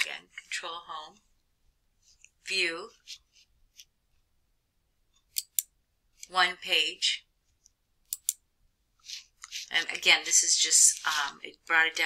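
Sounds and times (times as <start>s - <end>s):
computer mouse clicks: 5.2s - 6.3s, 7.6s - 8.4s.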